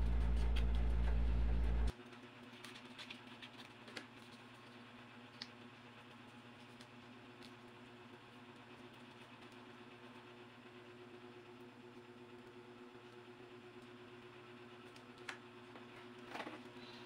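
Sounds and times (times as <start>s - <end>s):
faint room hum: 0.0s - 17.0s.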